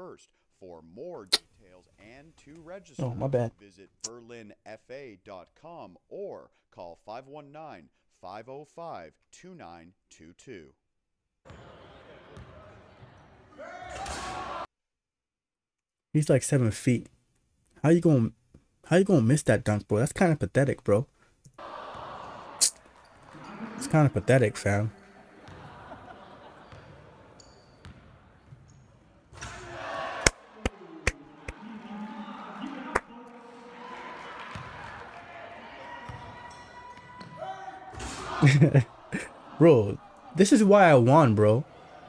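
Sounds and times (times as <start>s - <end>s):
gym crowd noise: 21.6s - 27.6s, 29.5s - 42.0s
crowd chatter: 30.2s - 37.0s.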